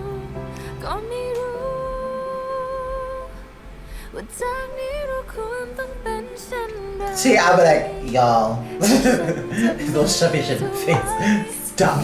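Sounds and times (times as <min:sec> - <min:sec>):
person singing long note: 0:04.2 - 0:12.0.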